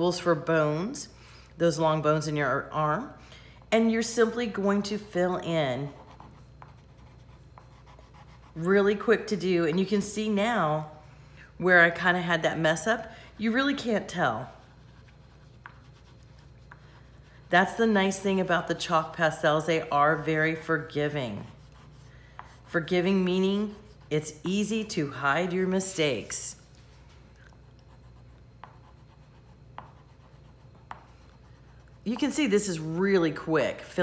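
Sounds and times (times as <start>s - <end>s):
chalk pastel scratching on paper: 5.7s - 9.1s, 13.4s - 18.9s, 19.8s - 24.5s, 27.7s - 32.5s.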